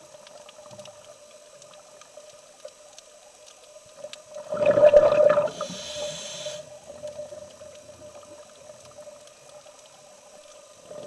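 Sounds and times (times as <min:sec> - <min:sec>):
low steady background noise: 0:00.0 - 0:11.0
exhaled bubbles underwater: 0:04.3 - 0:06.2
regulator inhale hiss: 0:05.2 - 0:07.4.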